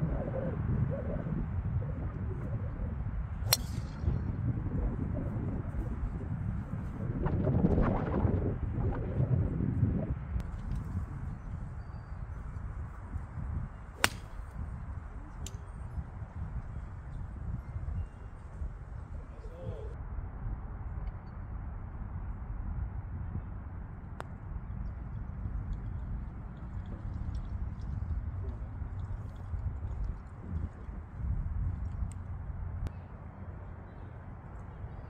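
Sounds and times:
wind on microphone: 0.0 - 35.0
golf club striking ball: 3.5 - 4.0, 14.0 - 14.6.

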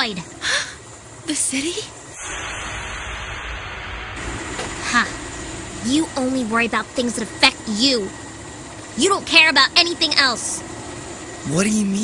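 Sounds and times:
machinery rushing hiss and rumble: 0.0 - 12.0.

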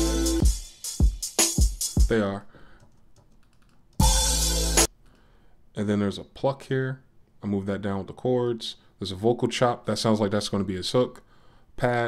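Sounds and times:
hip-hop beat: 0.0 - 2.2, 4.0 - 4.9.

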